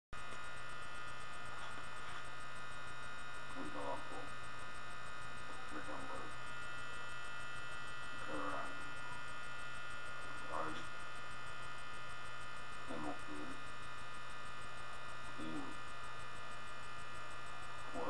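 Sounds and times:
electrical mains hum: 0.1s - 18.0s.

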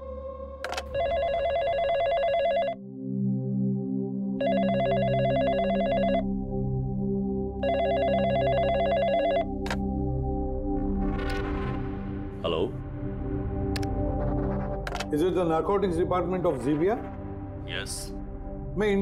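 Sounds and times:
low background music: 0.0s - 19.0s
telephone ringing warbling trill: 1.0s - 2.8s, 4.4s - 6.2s, 7.6s - 9.5s
sharp click: 14.9s - 15.1s.

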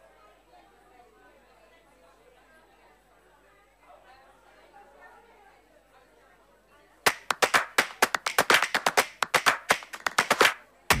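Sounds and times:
hands clapping: 7.1s - 11.0s.

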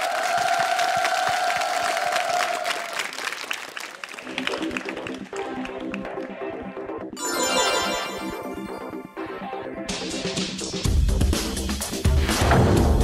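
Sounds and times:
audience clapping: 0.0s - 6.6s
music: 4.2s - 13.0s.

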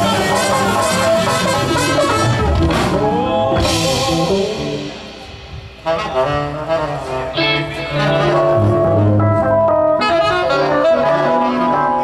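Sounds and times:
music with singing voice: 0.0s - 12.0s.

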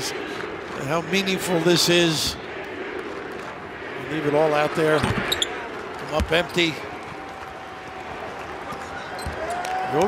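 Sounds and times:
sparse crowd and court noise: 0.0s - 10.0s.

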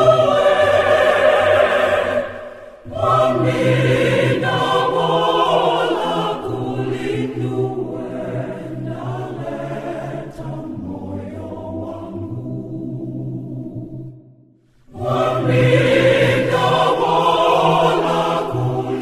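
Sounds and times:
church choir singing a hymn: 0.0s - 14.2s, 14.9s - 19.0s.

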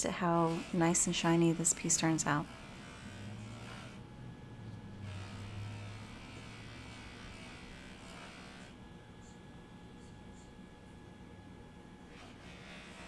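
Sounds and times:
polisher motor humming: 0.2s - 8.8s, 12.1s - 13.0s.

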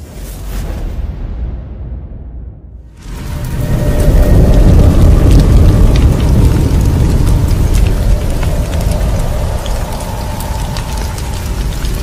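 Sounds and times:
deep steady rumble: 2.5s - 12.0s
sharp crackles: 3.0s - 12.0s.

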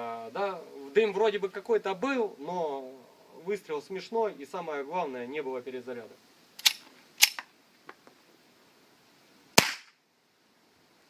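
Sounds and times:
gas pistol shots: 9.6s - 10.0s.

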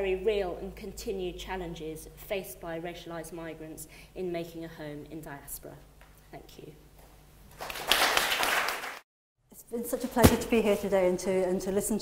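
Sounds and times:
audience applauding: 7.6s - 9.0s.

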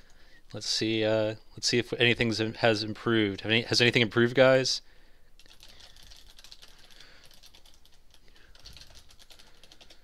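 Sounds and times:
typing on keyboard: 5.4s - 10.0s.

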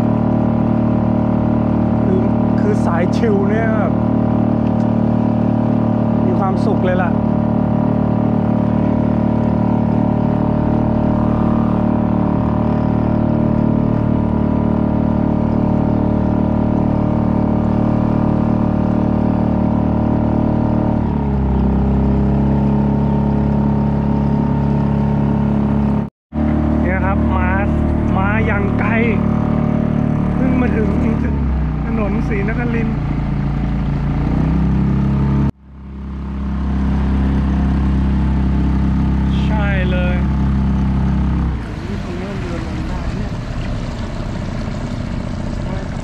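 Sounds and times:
outboard motor running: 0.0s - 46.0s.

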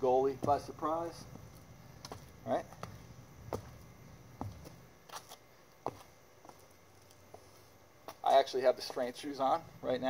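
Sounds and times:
footstep taps and scuffs: 0.2s - 9.1s.

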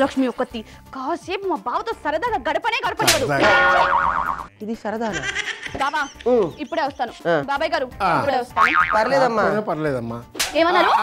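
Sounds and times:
falling wobbling boing tone: 3.4s - 4.5s.

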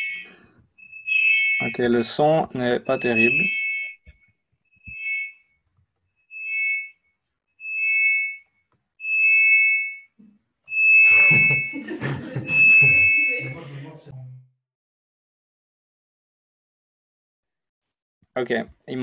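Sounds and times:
audio feedback whistle: 0.0s - 1.9s, 2.7s - 5.6s, 6.2s - 11.8s, 12.4s - 13.7s.

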